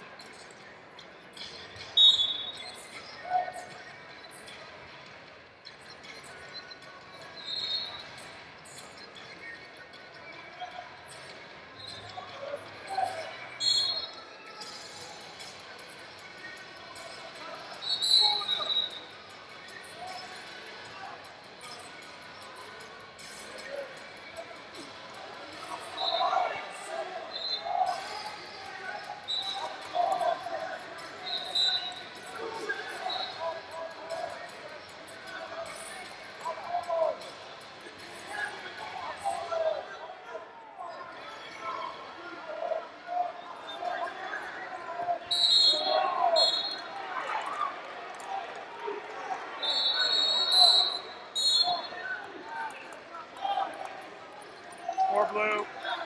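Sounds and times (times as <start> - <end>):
people calling out in arena: 23.6 - 37.4, 38.1 - 54.0, 54.8 - 56.0.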